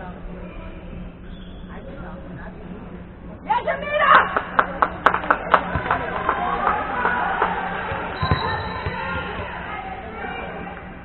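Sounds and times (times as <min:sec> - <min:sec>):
volleyball bouncing on wooden floor: 0:05.6 - 0:06.1, 0:07.9 - 0:09.5.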